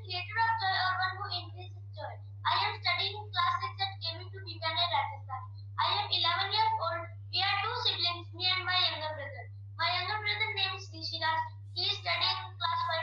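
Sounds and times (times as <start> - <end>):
child speaking through video call: 0.0 - 13.0
steady low hum: 0.0 - 13.0.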